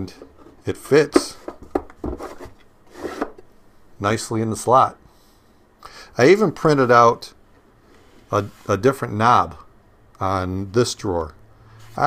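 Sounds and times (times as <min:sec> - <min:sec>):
plastic drawer scraping against wood: 0:01.2 - 0:03.4.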